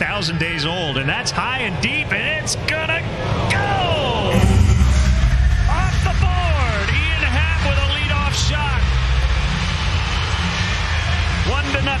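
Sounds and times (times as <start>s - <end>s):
music: 4.3s - 12.0s.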